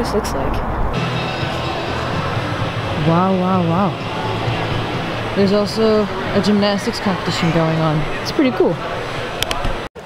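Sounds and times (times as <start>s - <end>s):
indoor arena ambient noise: 0.0s - 10.0s.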